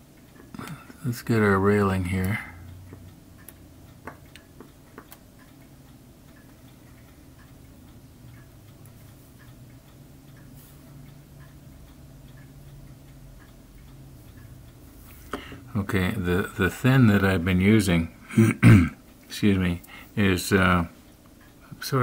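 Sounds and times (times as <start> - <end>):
faint regular ticking: 0.0 - 22.0
low steady hum: 0.0 - 22.0.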